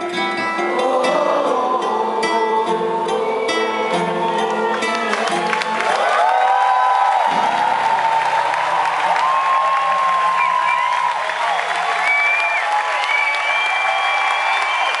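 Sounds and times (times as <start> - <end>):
audience applauding and cheering: 3.3 - 15.0
long whistles: 10.3 - 11.4, 12.0 - 15.0.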